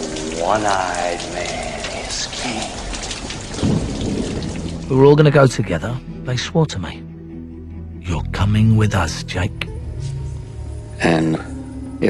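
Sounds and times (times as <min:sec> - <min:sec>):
thunder rumble: 0:00.0 - 0:05.7
steady rain: 0:00.0 - 0:05.9.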